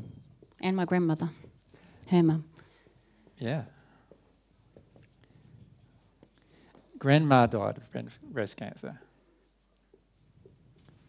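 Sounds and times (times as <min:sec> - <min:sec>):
marker pen on whiteboard: 0:00.0 - 0:11.0.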